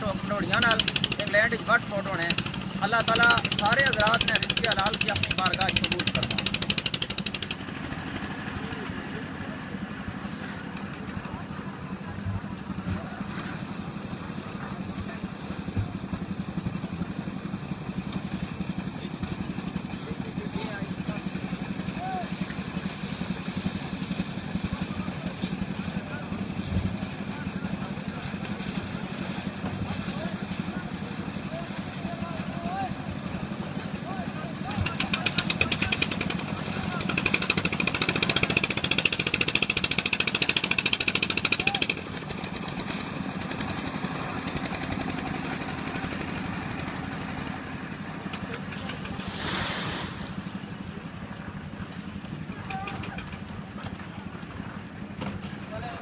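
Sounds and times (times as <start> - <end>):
concrete mixer engine running: 0.0 - 56.0
faint voices: 7.7 - 16.6.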